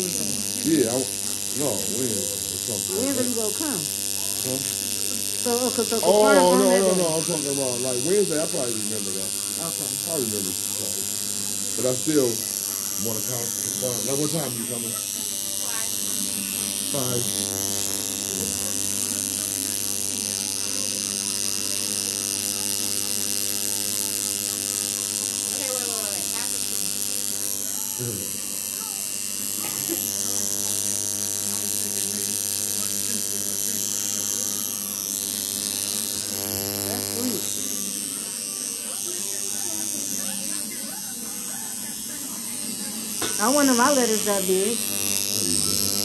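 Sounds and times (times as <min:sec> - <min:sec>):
faint voices: 0:00.0 - 0:46.0
tattoo machine buzzing: 0:00.0 - 0:46.0.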